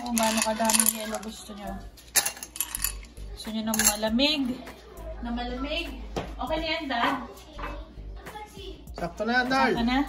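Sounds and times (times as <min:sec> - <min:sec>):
ice cubes clinking in glass: 0:00.0 - 0:01.4, 0:02.1 - 0:03.1.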